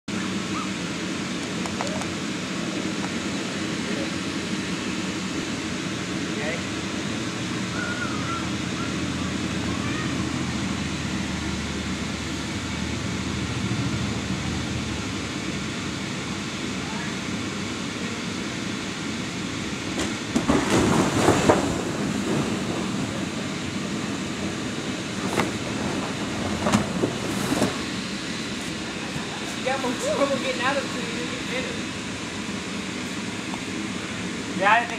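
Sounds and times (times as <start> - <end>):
blower fan droning: 0.1 - 34.9.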